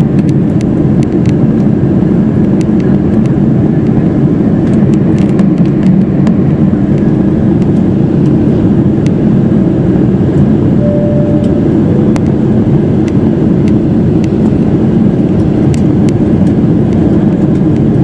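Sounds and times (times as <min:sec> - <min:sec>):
aircraft cabin rumble: 0:00.0 - 0:18.0.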